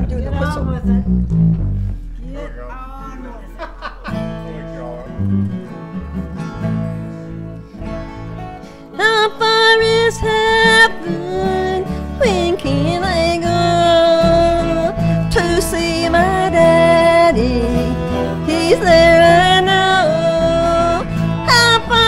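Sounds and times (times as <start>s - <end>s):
strummed guitars and mandolin: 0.0s - 22.0s
fiddle melody: 2.9s - 22.0s.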